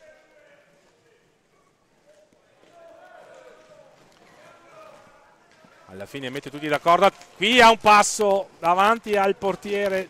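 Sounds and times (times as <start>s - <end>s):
clatter of skates and sticks: 0.0s - 7.5s, 8.1s - 10.0s.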